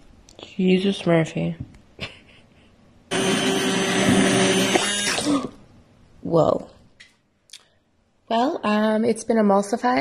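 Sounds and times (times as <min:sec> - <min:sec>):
hand blender running: 0:03.1 - 0:05.6.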